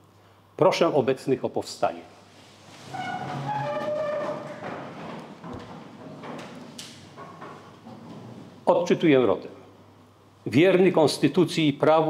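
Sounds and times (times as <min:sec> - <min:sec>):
shuffling: 0:02.1 - 0:08.6
chair legs scraping on floor: 0:02.2 - 0:08.7.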